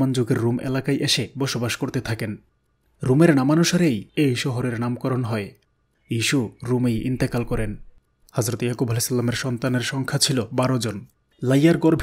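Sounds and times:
man narrating: 0.0 - 2.4, 3.0 - 12.0.

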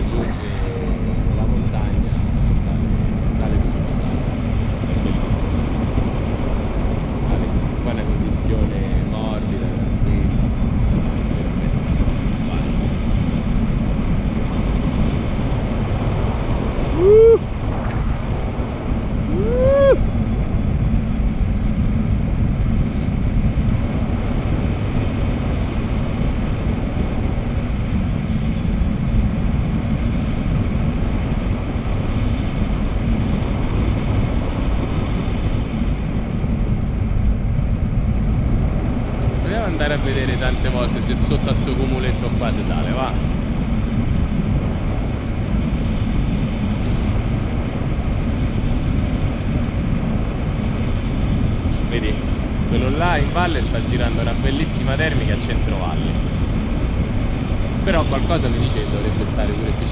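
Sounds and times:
wind rumbling over microphone: 0.0 - 59.9.

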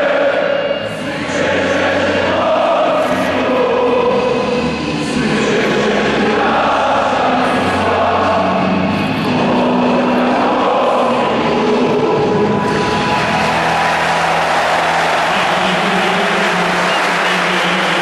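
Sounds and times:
stadium crowd chanting and singing: 0.0 - 18.0.

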